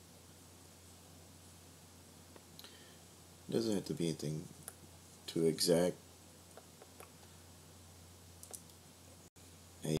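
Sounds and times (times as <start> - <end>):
low electrical hum: 0.0 - 10.0
faint computer mouse clicks: 8.4 - 8.8.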